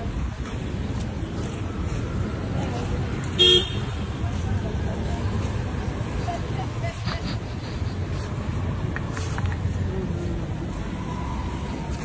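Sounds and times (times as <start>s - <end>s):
street traffic rumbling: 0.0s - 12.0s
vehicle horn beep: 3.4s - 4.0s.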